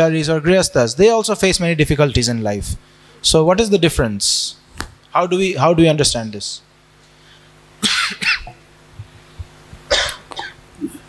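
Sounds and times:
man speaking: 0.0s - 6.7s
man coughing and clearing throat: 7.8s - 8.6s, 9.9s - 11.0s.

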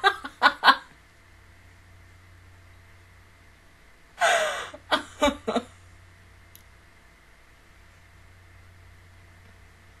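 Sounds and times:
woman gasping: 4.2s - 4.8s
woman short breath: 4.2s - 4.8s.

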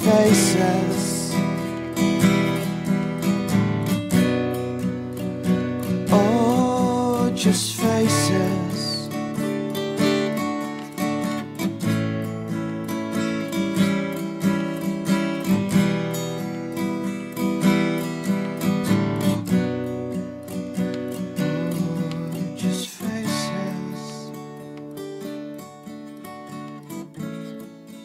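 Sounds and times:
strummed acoustic guitar: 0.0s - 28.0s.

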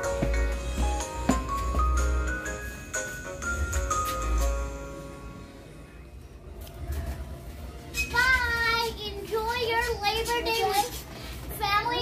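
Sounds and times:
child singing in high voice: 8.2s - 12.0s.

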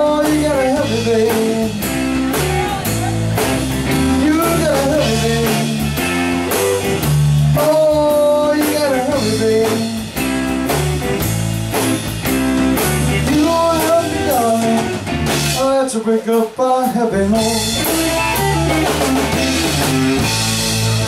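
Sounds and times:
bending guitar lead line: 0.0s - 15.7s, 17.2s - 21.0s
drums: 0.0s - 21.0s
electric guitars: 0.0s - 21.0s.

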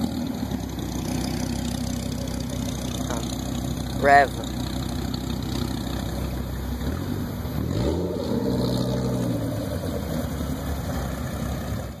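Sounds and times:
car engine revving and accelerating: 0.0s - 12.0s.

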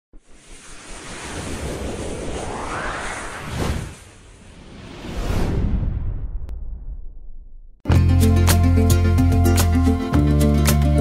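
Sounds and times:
whoosh with low rumble: 0.2s - 7.8s.

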